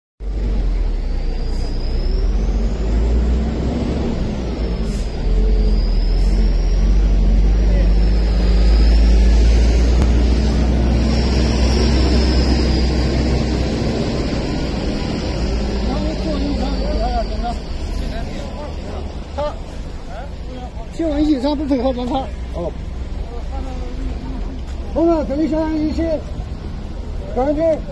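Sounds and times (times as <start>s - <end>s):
road noise: 0.2s - 27.9s
faint high whistle: 1.0s - 3.2s, 4.4s - 9.5s, 15.2s - 19.0s
car engine idling: 3.4s - 27.9s.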